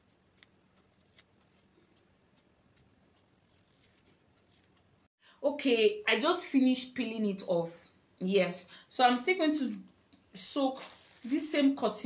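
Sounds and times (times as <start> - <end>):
face mask peeling off skin: 0.0 - 1.3, 3.3 - 4.8.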